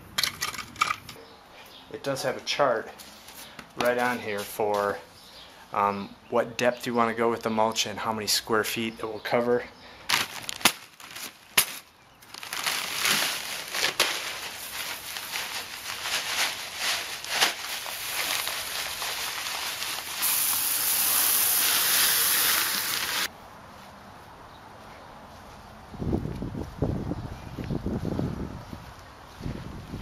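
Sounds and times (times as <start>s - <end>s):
gravel pouring onto ground: 12.3s - 23.3s.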